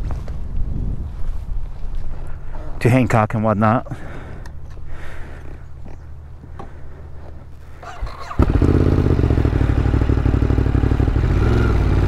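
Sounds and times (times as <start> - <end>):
motorcycle engine idling: 5.6 - 12.0.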